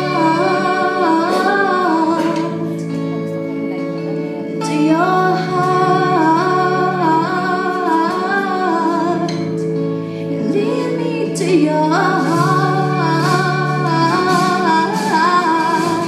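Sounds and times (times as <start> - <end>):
live band held chords: 0.0 - 16.0
woman singing worship song: 0.0 - 16.0.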